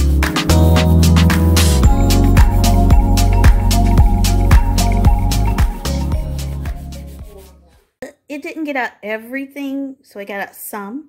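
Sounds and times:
background music: 0.0s - 7.8s
woman speaking: 8.0s - 11.0s.

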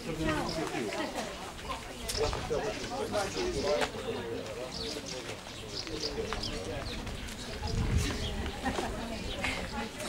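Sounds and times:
people talking: 0.0s - 10.0s
low rumble on microphone: 6.8s - 9.5s.

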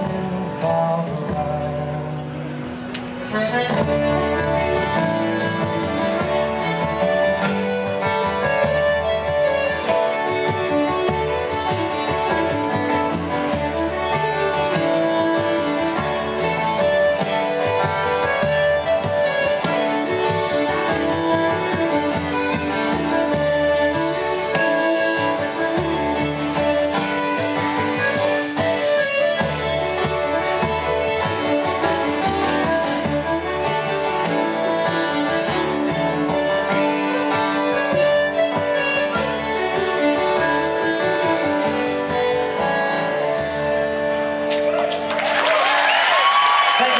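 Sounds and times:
acoustic guitar strummed: 0.0s - 45.1s.

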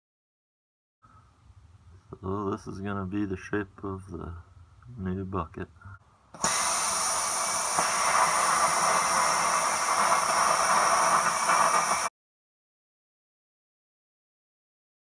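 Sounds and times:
plasma cutter hissing: 6.4s - 12.1s.

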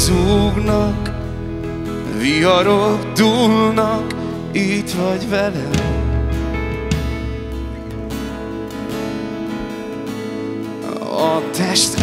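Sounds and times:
low bass: 0.0s - 10.7s
strummed guitar: 0.0s - 12.0s.

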